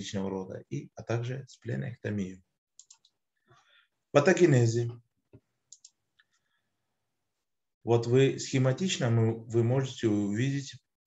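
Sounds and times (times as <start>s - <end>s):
faint clicks: 2.8s - 3.2s, 5.3s - 6.4s.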